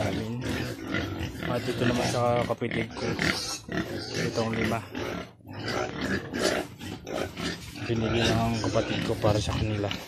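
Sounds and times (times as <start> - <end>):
pigs grunting: 0.0 - 10.0.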